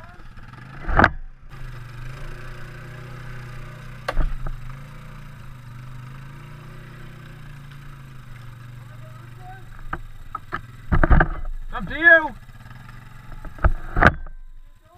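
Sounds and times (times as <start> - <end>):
atv engine running: 0.0 - 14.9.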